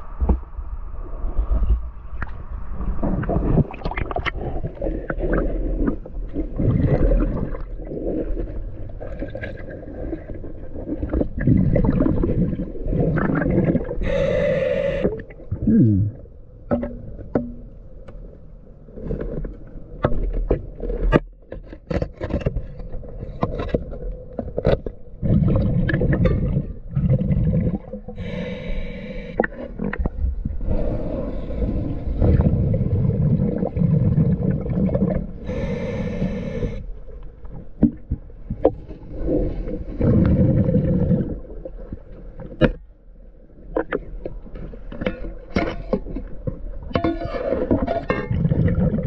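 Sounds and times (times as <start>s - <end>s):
exhaled bubbles rumbling: 0.0s - 21.4s, 22.4s - 49.0s
regulator inhalation hiss: 14.0s - 15.1s, 28.2s - 29.4s, 35.5s - 36.8s.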